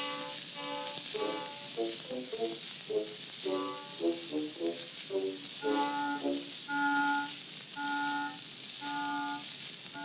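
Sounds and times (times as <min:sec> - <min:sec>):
record surface hiss: 0:00.0 - 0:10.0
orchestra playing held notes: 0:05.6 - 0:07.2.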